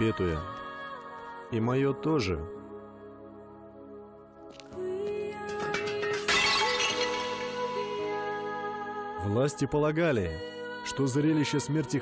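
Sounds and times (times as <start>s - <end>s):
background music: 0.0s - 12.0s
glass shattering crash: 5.4s - 8.4s.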